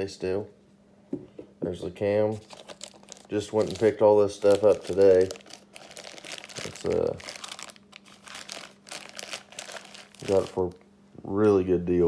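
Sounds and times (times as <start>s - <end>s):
plastic wrapping crinkling: 2.3s - 10.8s.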